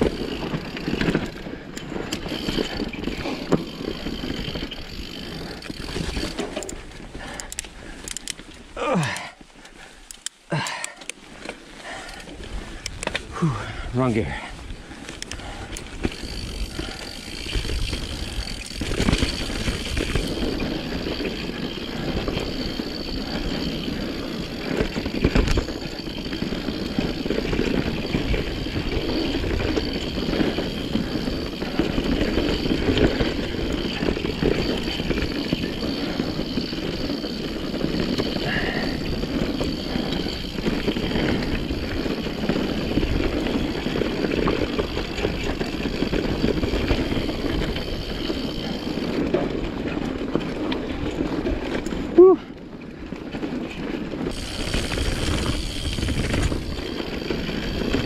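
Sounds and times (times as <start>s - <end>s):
tyres rolling over dirt: 0.0s - 9.5s, 15.5s - 58.0s
bike rattling over bumps: 0.0s - 58.0s.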